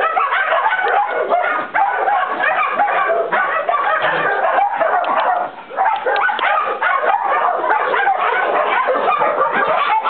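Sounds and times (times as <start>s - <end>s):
many dogs barking: 0.0s - 10.0s.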